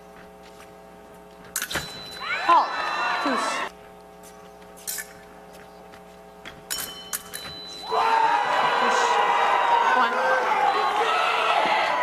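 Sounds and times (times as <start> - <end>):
steady low hum: 0.0 - 11.0
fencing blades clicking: 4.8 - 5.3, 6.7 - 7.5.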